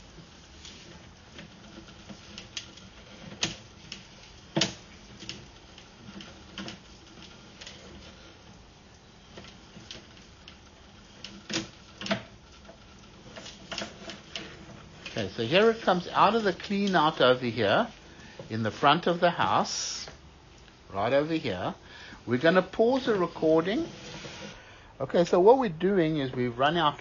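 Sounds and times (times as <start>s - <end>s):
cable clicking and knocking in pipe: 0.0s - 17.1s.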